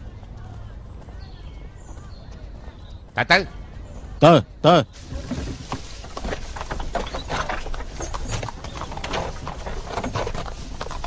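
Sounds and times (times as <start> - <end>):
horse hooves clip-clopping: 0.0 - 4.2, 5.0 - 11.0.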